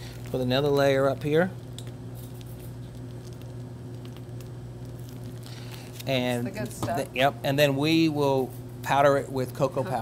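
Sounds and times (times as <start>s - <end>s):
kitchen equipment humming: 0.0s - 10.0s.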